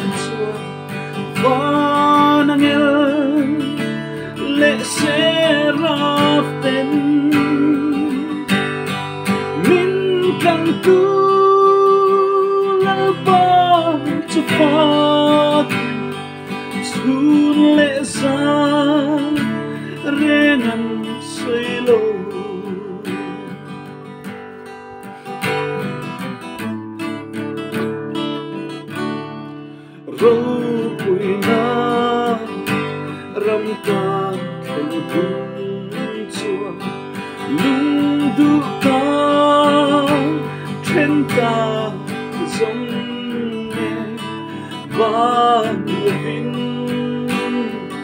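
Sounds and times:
man singing: 0.0s - 24.1s, 25.4s - 48.0s
acoustic guitar strumming: 0.0s - 48.0s.

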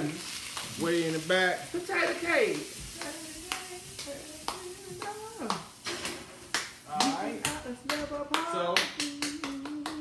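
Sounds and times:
hand claps in steady beat: 3.0s - 5.7s, 6.5s - 10.0s
person humming: 9.0s - 10.0s.

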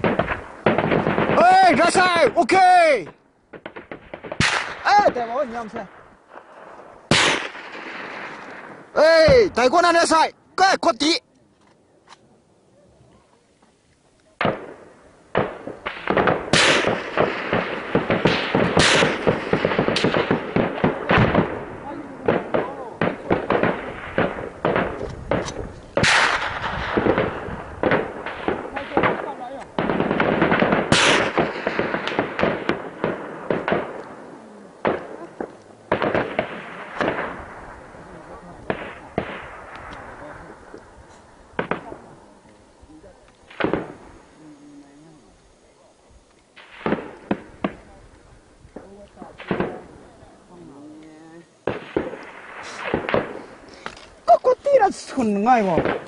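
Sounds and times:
gunfire volleys: 0.0s - 9.7s, 14.4s - 40.8s, 41.5s - 42.2s, 43.5s - 44.2s, 46.6s - 48.0s, 48.8s - 50.2s, 51.6s - 54.0s, 54.8s - 56.0s.

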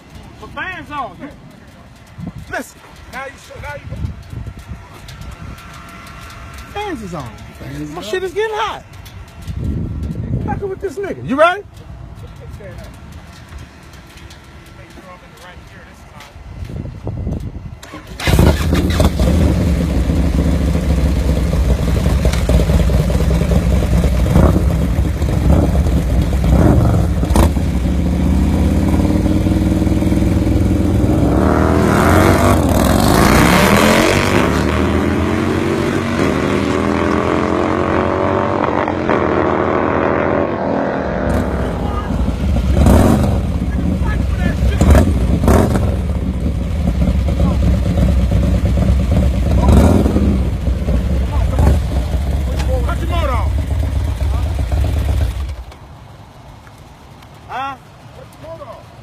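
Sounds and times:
motorcycle engines revving: 0.0s - 59.0s.

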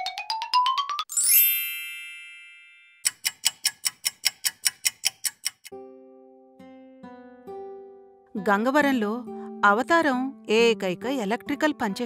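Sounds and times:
bright chime: 1.1s - 3.0s.

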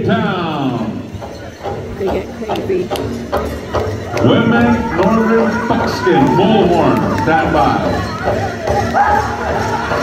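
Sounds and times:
man speaking over public address: 0.0s - 1.2s, 4.1s - 8.0s.

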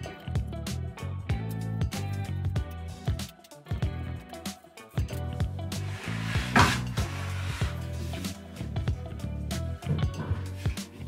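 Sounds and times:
background music with steady beat: 0.0s - 11.0s
device scraping on wooden workbench: 5.8s - 8.3s.

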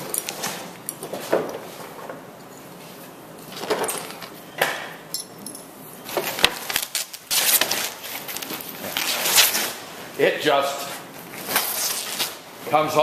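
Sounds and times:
canvas ripping: 8.8s - 9.8s, 11.4s - 12.4s.

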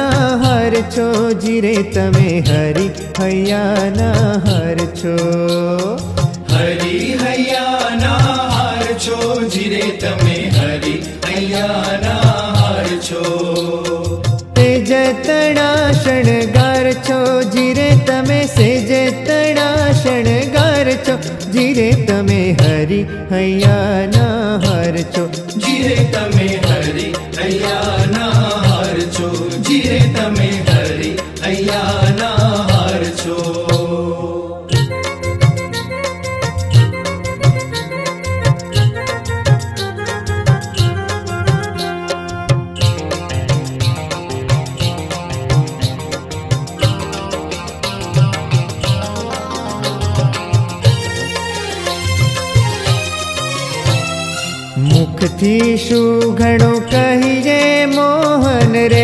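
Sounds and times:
steady percussion beat: 0.0s - 23.0s, 23.6s - 34.1s, 34.7s - 59.0s
person singing devotional song: 0.0s - 41.6s, 54.3s - 59.0s
sustained accompaniment: 6.4s - 19.8s, 25.2s - 36.2s.

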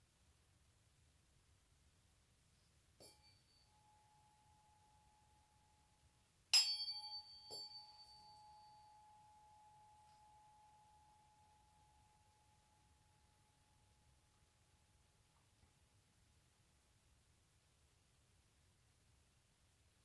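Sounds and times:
mallet striking tuning fork: 3.0s - 13.5s
tuning fork ringing tone: 3.0s - 14.5s
fainter lower tone: 3.0s - 15.8s.

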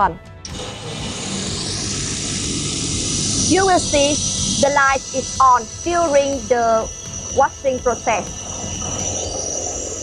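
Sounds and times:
washing machine hissing and humming: 0.5s - 10.0s.

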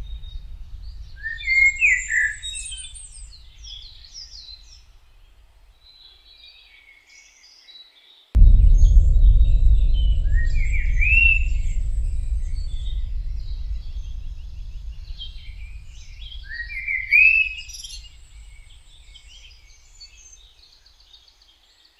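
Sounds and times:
deep low rumble: 0.0s - 5.7s, 8.4s - 20.4s.

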